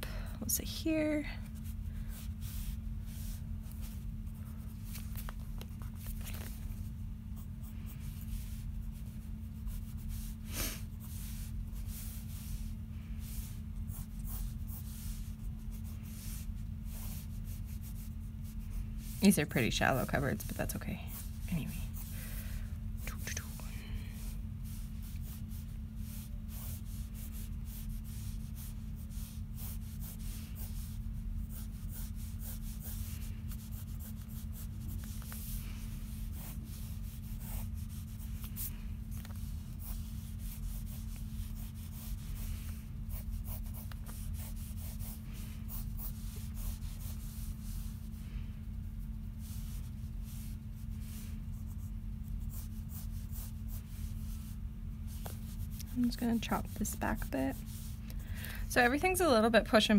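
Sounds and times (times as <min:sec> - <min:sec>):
pencil scratching on paper: 0:07.4 - 0:22.1, 0:24.2 - 0:48.2, 0:49.0 - 0:58.0.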